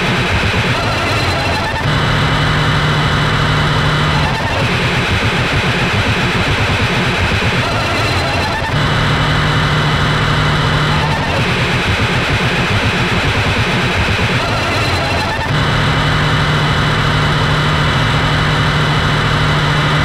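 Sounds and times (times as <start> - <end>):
distorted metal band riff: 0.0 - 20.0.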